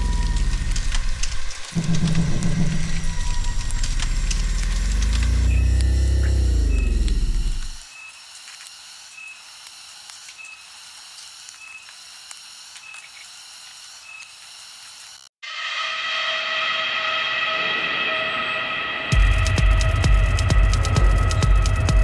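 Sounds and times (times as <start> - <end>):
deep drone rising and falling: 0.0 - 7.8, 16.6 - 22.0.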